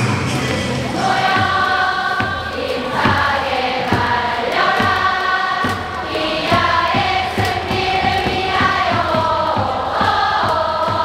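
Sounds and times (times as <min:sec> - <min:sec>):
stadium crowd singing in unison: 0:00.0 - 0:11.0
steady beat: 0:00.0 - 0:11.0.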